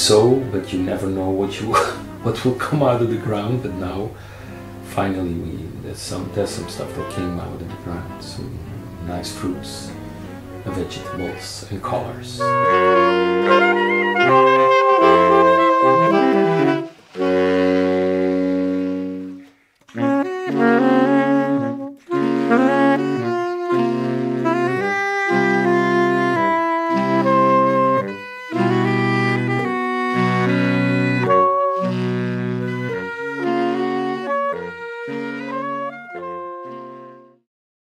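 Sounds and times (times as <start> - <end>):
saxophone quartet playing chords: 0.0 - 37.4.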